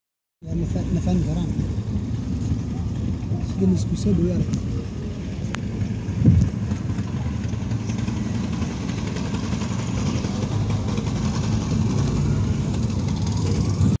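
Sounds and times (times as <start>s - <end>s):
car engine and tyres rumbling: 0.4s - 14.0s.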